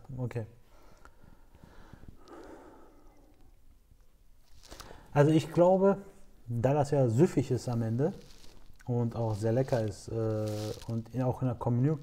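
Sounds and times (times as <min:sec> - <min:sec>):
soft breaths through nose: 0:00.6 - 0:03.6, 0:04.4 - 0:05.2.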